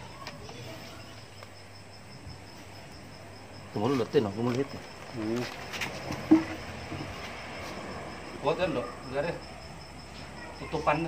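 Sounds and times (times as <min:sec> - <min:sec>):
insect trilling: 0:00.0 - 0:11.0.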